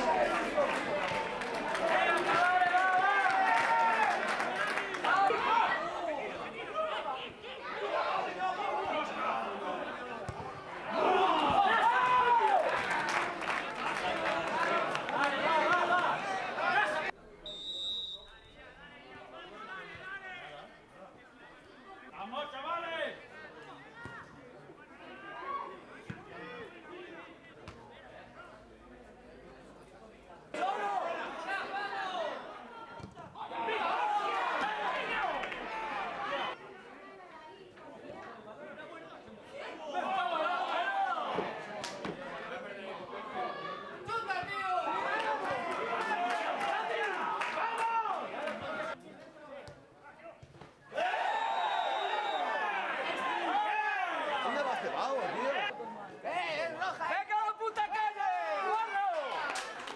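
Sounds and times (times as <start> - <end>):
people shouting and talking: 0.0 - 59.9
people shouting: 10.8 - 13.0, 50.9 - 54.7.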